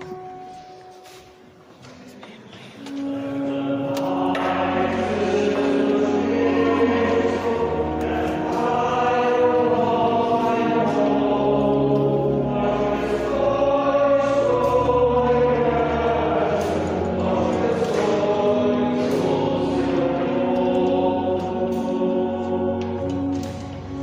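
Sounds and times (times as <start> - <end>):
choir singing slow hymn: 2.6 - 24.0.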